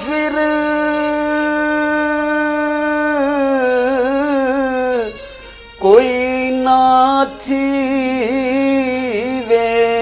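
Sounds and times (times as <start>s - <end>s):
man singing a long note: 0.0s - 5.2s, 5.8s - 10.0s.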